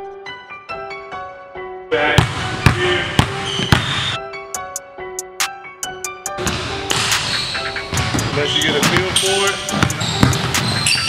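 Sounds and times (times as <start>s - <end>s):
background music: 0.0s - 11.0s
basketball bouncing on wood floor: 2.2s - 4.1s, 7.9s - 11.0s.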